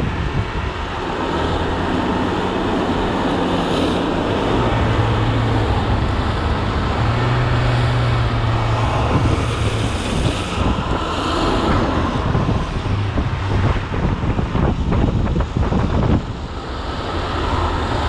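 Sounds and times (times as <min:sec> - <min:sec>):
low hum: 0:00.0 - 0:18.0
wind and road noise: 0:00.0 - 0:18.0.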